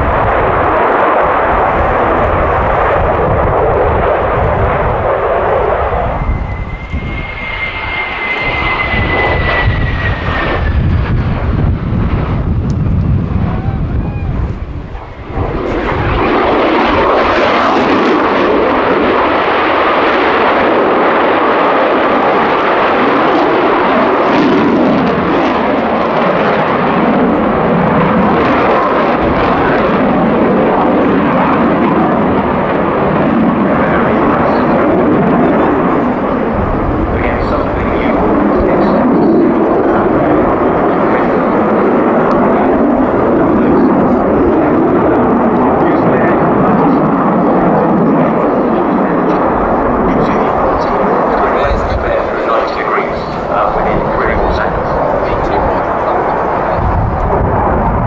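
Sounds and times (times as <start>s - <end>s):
jet engines roaring: 0.0s - 58.0s.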